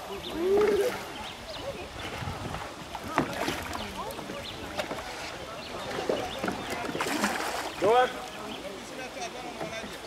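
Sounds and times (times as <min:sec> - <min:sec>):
water splashing and gurgling: 0:00.0 - 0:08.5.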